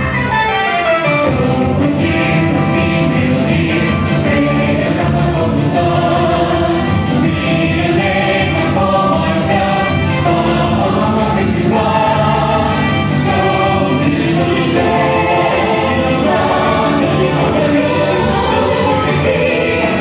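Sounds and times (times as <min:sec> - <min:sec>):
choir singing in harmony: 0:01.2 - 0:20.0.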